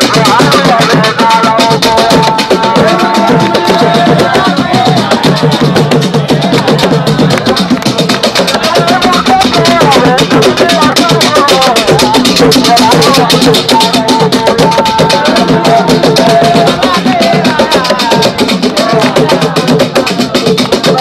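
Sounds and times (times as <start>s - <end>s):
dance music with fast drumming: 0.0s - 21.0s.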